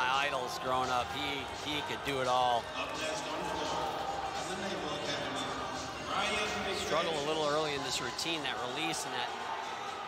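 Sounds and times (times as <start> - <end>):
man commentating: 0.0 - 9.5
large hall background: 0.0 - 10.0.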